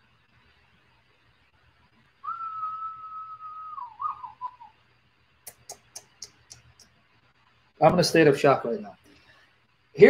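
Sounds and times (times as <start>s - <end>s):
man whistling: 2.2s - 4.8s.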